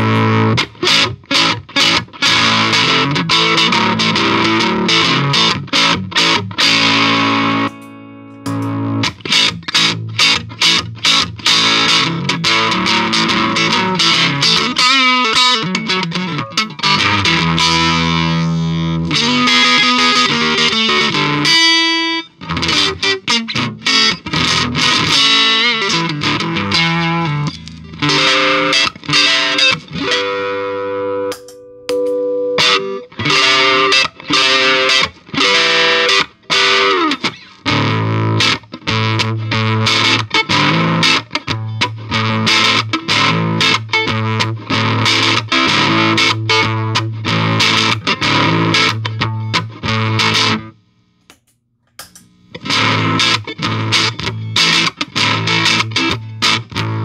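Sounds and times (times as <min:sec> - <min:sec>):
overdriven electric guitar: 0:00.0 - 0:57.0.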